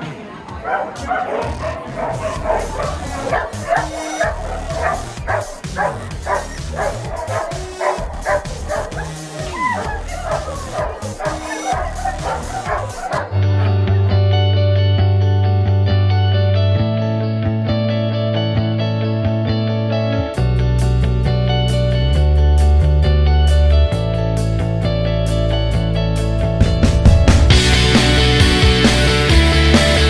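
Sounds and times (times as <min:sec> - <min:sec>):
voices: 0:00.0 - 0:13.8
background music: 0:00.0 - 0:30.0
dogs barking and yipping: 0:00.6 - 0:13.7
guitar music: 0:01.6 - 0:30.0.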